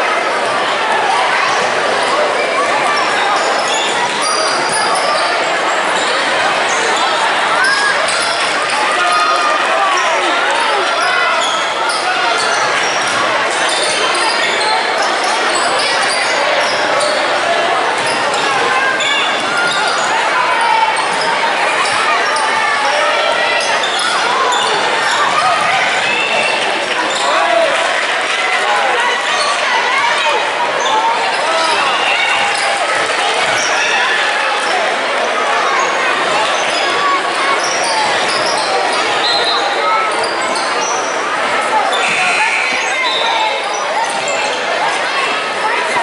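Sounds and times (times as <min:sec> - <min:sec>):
voices of players and spectators: 0:00.0 - 0:46.0
sneakers squeaking: 0:01.4 - 0:45.4.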